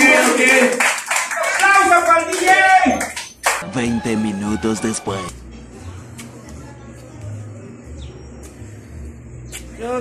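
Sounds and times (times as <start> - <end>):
group of people clapping: 0.0 - 3.7
voices: 0.0 - 10.0.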